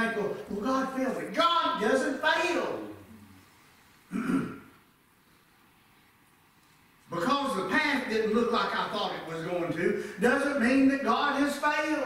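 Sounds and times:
man clearing his throat: 0:04.1 - 0:04.8.

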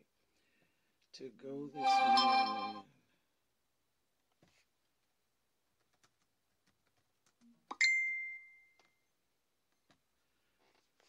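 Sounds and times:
bell-like ding: 0:01.8 - 0:02.8.

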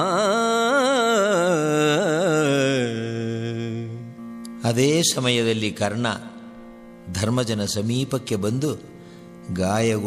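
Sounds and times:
man singing a long note: 0:00.0 - 0:04.9.

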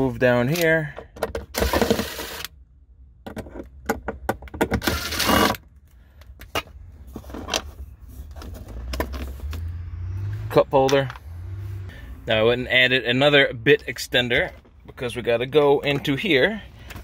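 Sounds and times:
impact driver spinning: 0:04.8 - 0:05.6.

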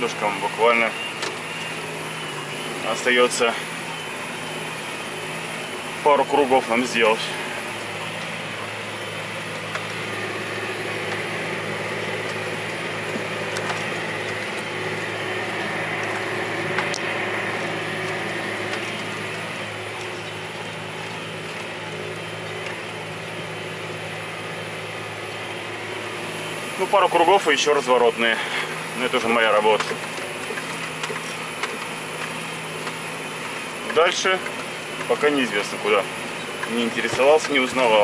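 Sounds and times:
tractor diesel engine running: 0:00.0 - 0:38.0.

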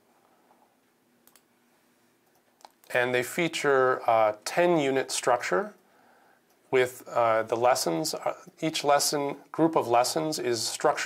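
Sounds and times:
man speaking: 0:02.8 - 0:05.8, 0:06.7 - 0:11.0.

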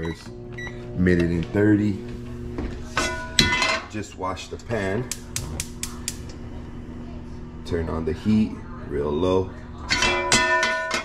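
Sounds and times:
gas burner igniter clicking: 0:05.1 - 0:06.4.

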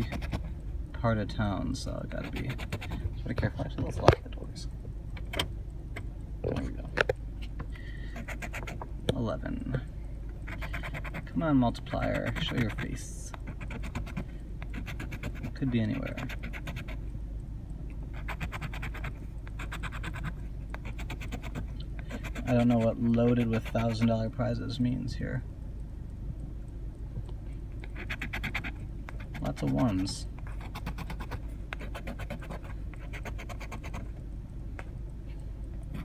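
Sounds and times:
coin scratching lottery ticket: 0:00.0 - 0:00.5, 0:02.1 - 0:03.0, 0:08.2 - 0:08.8, 0:10.4 - 0:11.3, 0:11.9 - 0:17.0, 0:18.1 - 0:24.2, 0:27.9 - 0:34.1.

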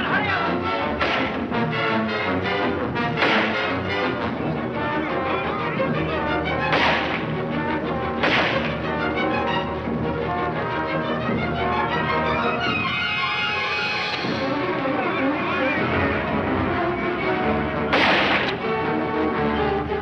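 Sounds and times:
orchestral score with brass and strings: 0:00.0 - 0:20.0
sharp crashes: 0:01.0 - 0:01.5, 0:03.2 - 0:03.7, 0:06.7 - 0:07.3, 0:08.2 - 0:08.8, 0:17.9 - 0:18.6.

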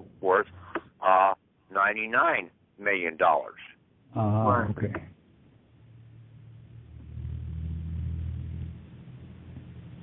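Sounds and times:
droning hum over telephone: 0:00.0 - 0:10.0.

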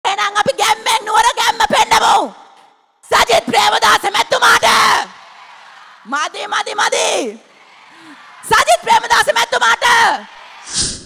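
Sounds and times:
woman speaking into a microphone: 0:00.0 - 0:02.4, 0:03.0 - 0:05.1, 0:06.0 - 0:07.4, 0:08.4 - 0:10.3.

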